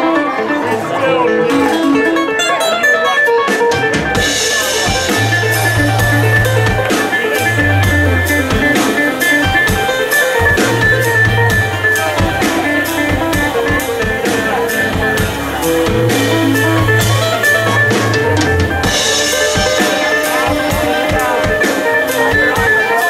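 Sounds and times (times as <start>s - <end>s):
drum kit beat: 0.0s - 23.0s
fiddle melody: 0.0s - 23.0s
guitar playing: 0.0s - 23.0s
long low bass notes: 4.2s - 23.0s.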